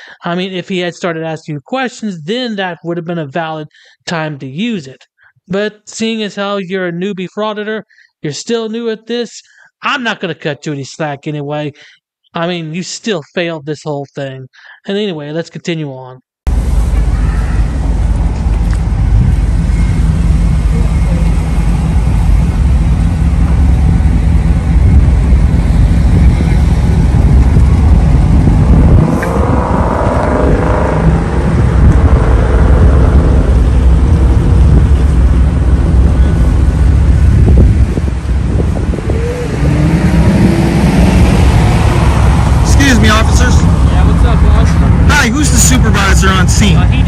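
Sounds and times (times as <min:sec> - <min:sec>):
passing cars rumbling: 0:16.5 - 0:47.0.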